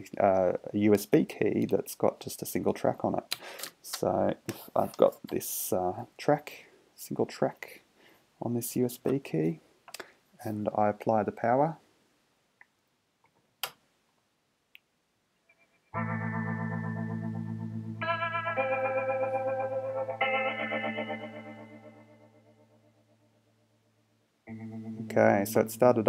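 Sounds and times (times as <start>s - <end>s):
music with wavering chords: 15.6s - 23.9s, 24.5s - 26.0s.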